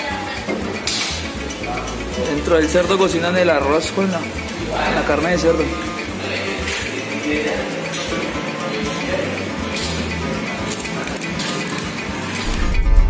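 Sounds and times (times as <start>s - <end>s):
background music: 0.0s - 13.0s
plucked guitar music with bass: 0.0s - 13.0s.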